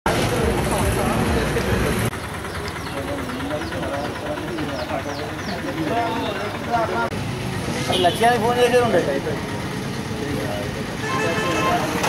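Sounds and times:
people talking at once: 0.1s - 7.2s
vehicle engine rumble: 0.1s - 11.0s
traffic noise: 0.1s - 12.0s.

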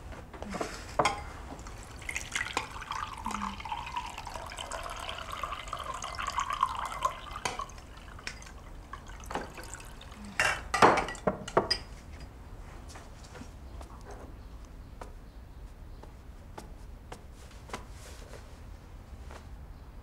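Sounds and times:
water pouring into glass: 1.6s - 11.3s
glass clinks: 2.2s - 9.8s, 10.4s - 11.9s.

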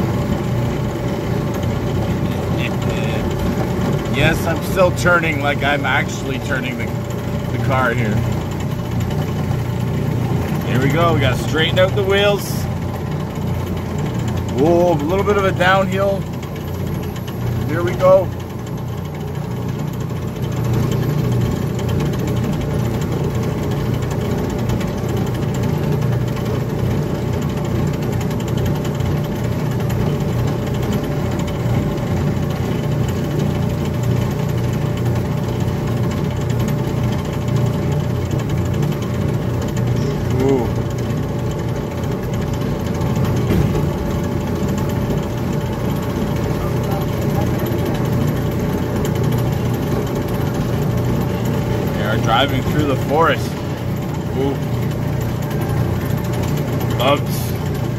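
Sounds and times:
ride car motor chugging: 0.0s - 57.9s.

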